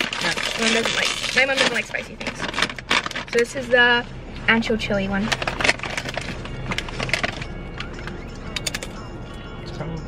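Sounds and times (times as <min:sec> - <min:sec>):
plastic chip bag crinkling: 0:00.0 - 0:03.5, 0:05.3 - 0:08.0.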